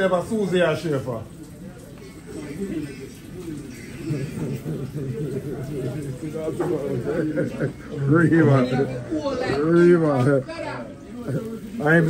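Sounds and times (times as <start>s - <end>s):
low voices murmuring: 0.0s - 12.0s
people talking: 0.0s - 12.0s.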